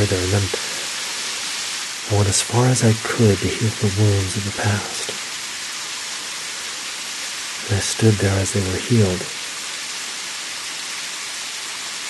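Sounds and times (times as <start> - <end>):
flowing water rushing: 0.0 - 12.0.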